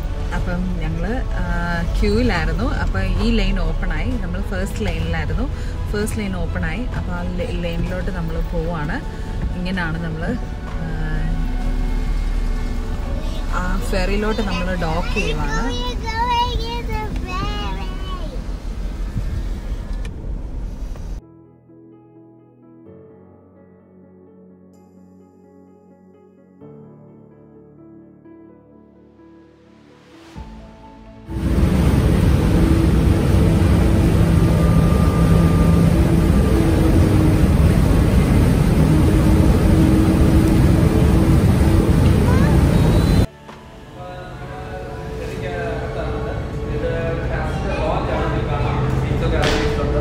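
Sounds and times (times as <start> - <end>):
car engine rumble from inside cabin: 0.2 - 21.2, 31.3 - 43.3
propeller wash rushing: 31.3 - 43.3.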